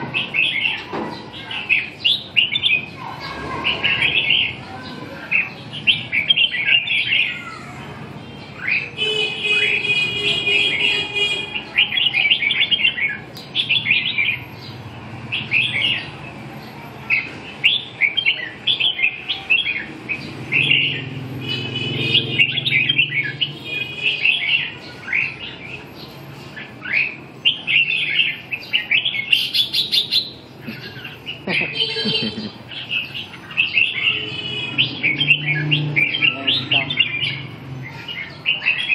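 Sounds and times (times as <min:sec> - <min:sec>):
birds chirping: 0:00.0 - 0:38.9.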